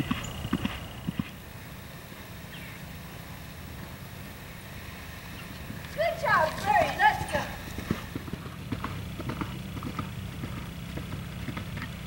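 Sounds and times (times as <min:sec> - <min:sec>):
horse hoofbeats on turf: 0:00.0 - 0:01.4, 0:05.7 - 0:12.0.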